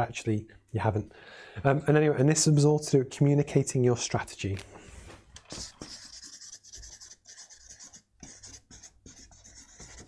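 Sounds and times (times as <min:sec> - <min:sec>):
marker pen writing on paper: 0:05.5 - 0:10.0.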